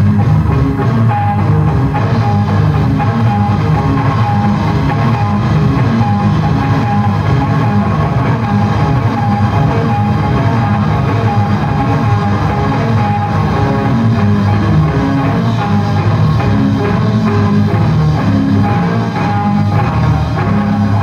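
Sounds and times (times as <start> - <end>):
bass guitar: 0.0 - 21.0
drum kit: 0.0 - 21.0
electric guitar: 0.0 - 21.0.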